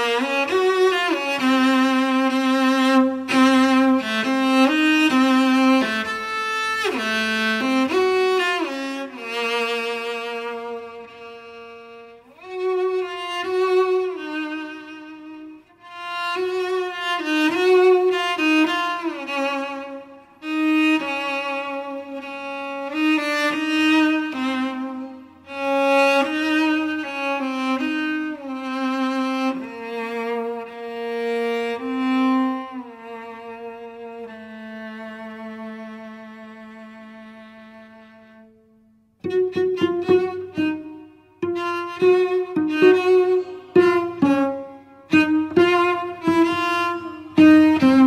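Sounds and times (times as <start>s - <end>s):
cello solo melody: 0.0s - 48.0s.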